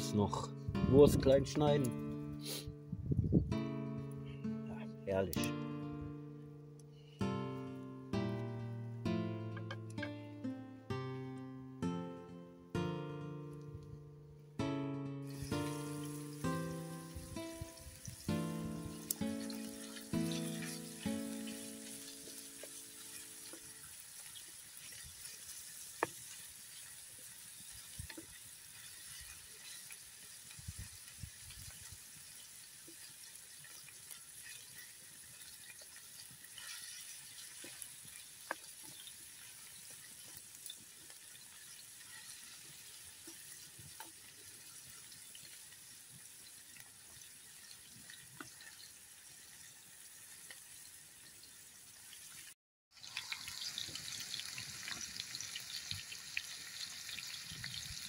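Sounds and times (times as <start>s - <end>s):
meat sizzling in a pan: 15.3s - 58.0s
sharp ticks and scrapes: 22.6s - 45.3s.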